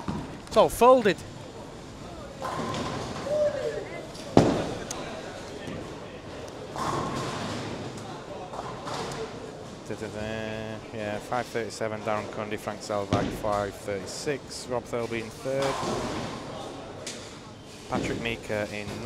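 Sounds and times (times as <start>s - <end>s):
bowling balls rolling: 1.8s - 4.9s.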